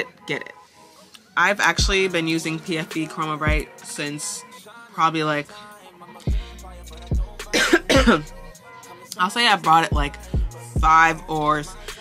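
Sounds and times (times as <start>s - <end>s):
hip-hop music with deep bass: 0.0s - 12.0s
woman coughing: 7.5s - 8.3s.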